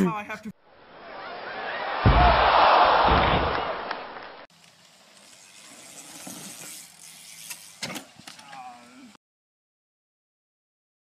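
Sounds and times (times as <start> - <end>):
sharp knocks: 2.0 - 2.4
bike rattling: 4.5 - 9.0.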